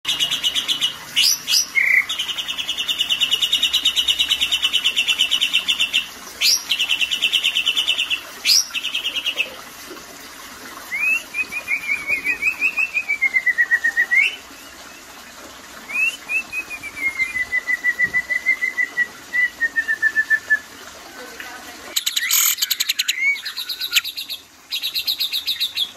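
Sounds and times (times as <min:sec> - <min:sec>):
bird song buzzing rattle: 0:22.0 - 0:25.9.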